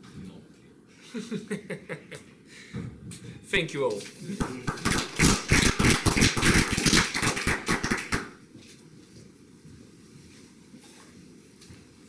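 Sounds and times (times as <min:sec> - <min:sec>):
audience applauding: 0:04.4 - 0:08.4.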